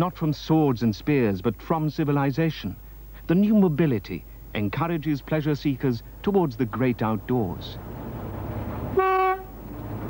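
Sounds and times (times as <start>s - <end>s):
rumble of moving train: 5.7s - 10.0s
locomotive horn toot: 8.8s - 9.6s.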